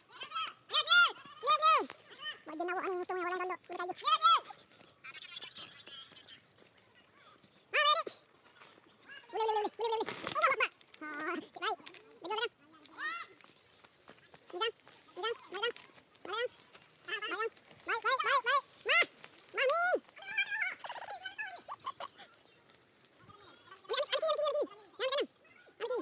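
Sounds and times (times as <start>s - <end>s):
voices shouting and whooping: 0.0s - 8.2s, 14.5s - 26.0s.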